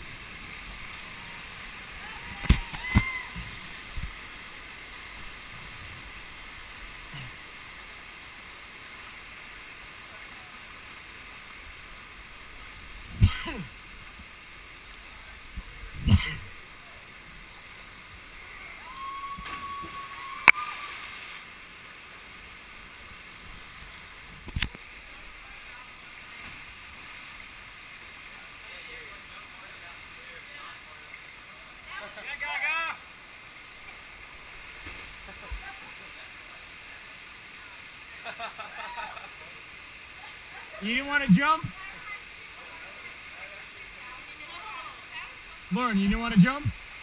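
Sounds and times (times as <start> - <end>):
waterfall rushing into pool: 0.0 - 47.0
distant high-pitched shouts: 1.2 - 3.5, 18.5 - 21.1.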